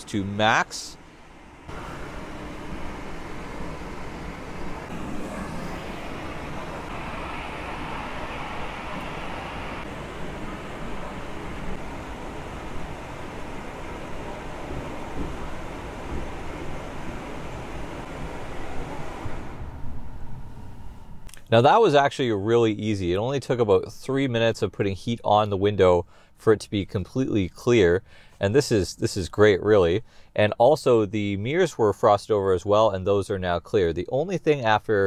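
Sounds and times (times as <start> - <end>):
car blower blowing air: 1.0 - 21.4.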